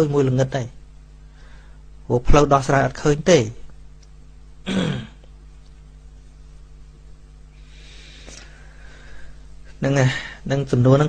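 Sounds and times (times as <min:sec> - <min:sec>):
faint electrical hum: 0:00.0 - 0:11.0
man clearing his throat: 0:04.6 - 0:05.3.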